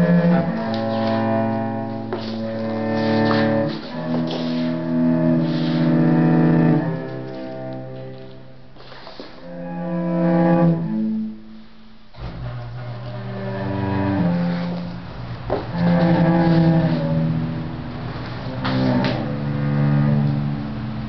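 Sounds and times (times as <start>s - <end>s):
bowed cello low notes: 0.0s - 21.0s.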